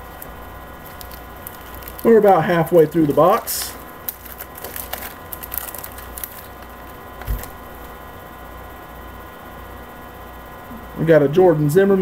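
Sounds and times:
electrical hum: 0.0s - 12.0s
cards clicking and foil crinkling: 0.1s - 8.0s.

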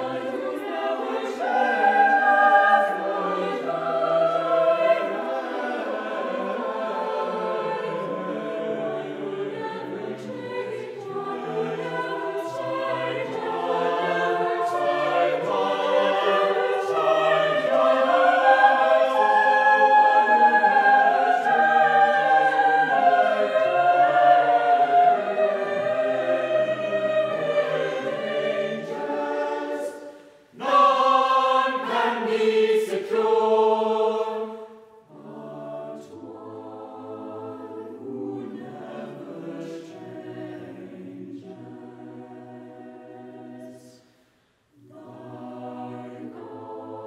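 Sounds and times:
mixed choir singing in parts: 0.0s - 47.0s.

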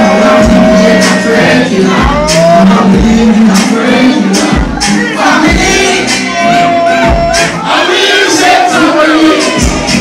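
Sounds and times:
crowd shouting and singing: 0.0s - 10.0s
dancehall music: 0.0s - 10.0s.

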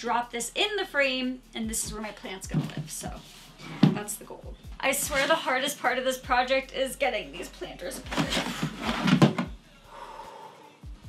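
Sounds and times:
plastic pots scraping and knocking: 2.4s - 4.2s, 5.0s - 5.5s, 7.9s - 9.5s.

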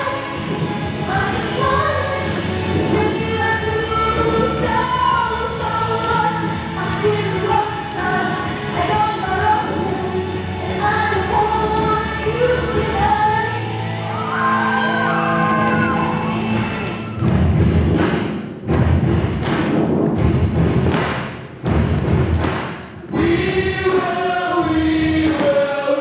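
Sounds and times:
group singing with music: 0.0s - 18.4s, 21.7s - 26.0s
heavy regular beats: 16.5s - 26.0s.

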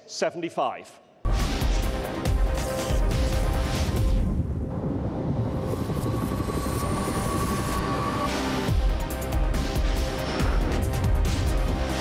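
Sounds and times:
thin whine rising in pitch: 4.7s - 8.7s.

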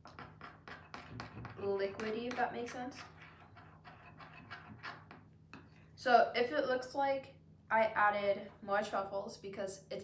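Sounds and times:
spoon scraping and tapping bowl: 0.0s - 5.7s
low steady hum: 0.0s - 10.0s.

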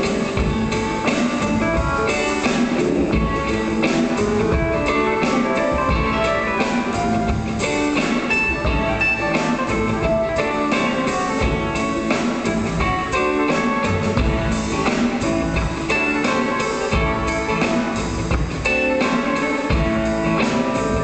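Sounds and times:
rock band playing instrumental: 0.0s - 21.0s.

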